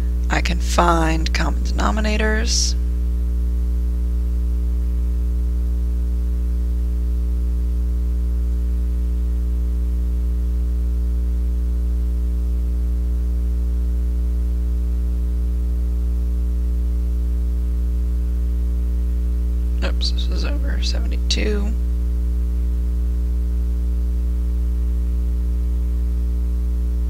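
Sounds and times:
electrical mains hum: 0.0 - 27.0.

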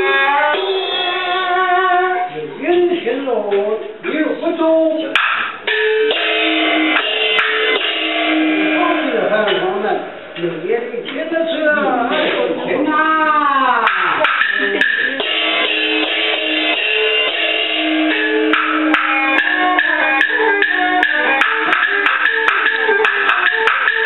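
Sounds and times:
instrumental music with held notes: 0.0 - 4.0, 5.1 - 10.4, 13.8 - 24.0.

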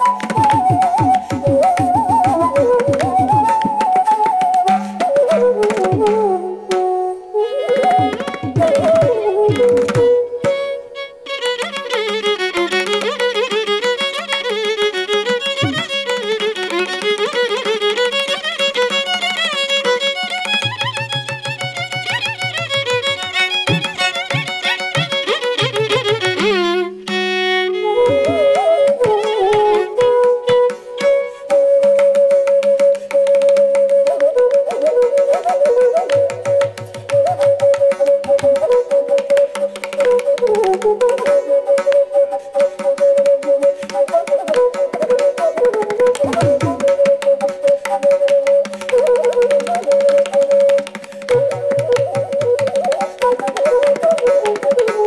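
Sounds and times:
bamboo flute: 0.0 - 55.0
violin playing ornamented phrases: 6.5 - 31.9.

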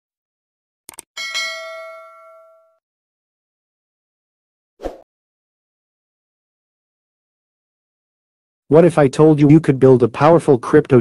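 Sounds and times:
notification bell ding: 1.2 - 2.8.

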